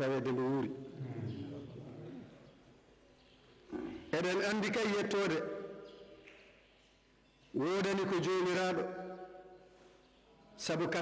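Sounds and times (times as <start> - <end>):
man reading aloud: 3.8 - 5.6, 7.5 - 9.0, 10.6 - 11.0.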